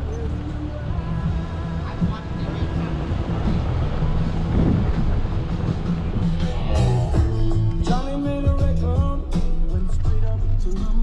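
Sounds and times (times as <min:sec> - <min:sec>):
radio music and voices: 0:00.0 - 0:03.3
vehicle road and engine rumble: 0:00.0 - 0:11.0.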